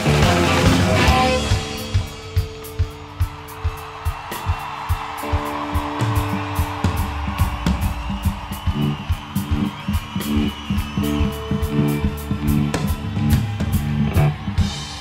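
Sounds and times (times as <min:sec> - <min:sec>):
bass line: 0:00.0 - 0:02.0
sustained electric guitar: 0:00.0 - 0:03.1
drums with cymbal strokes: 0:00.0 - 0:15.0.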